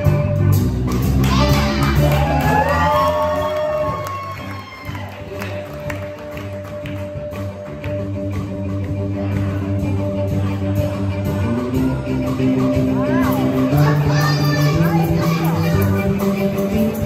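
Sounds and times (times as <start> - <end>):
live blues band playing: 0.0 - 17.0.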